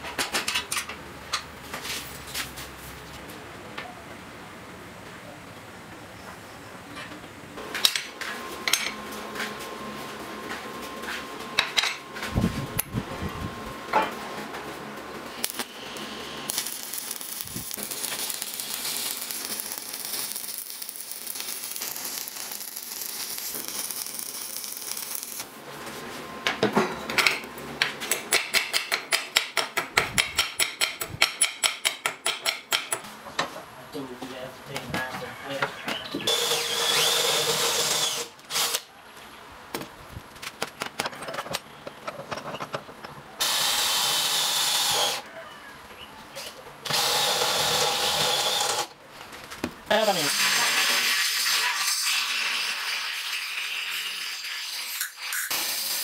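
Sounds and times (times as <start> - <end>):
welding arc crackling: 15.2 - 25.6, 46.9 - 56.0
cordless drill boring into steel: 36.3 - 38.8, 43.4 - 45.2, 46.9 - 48.9.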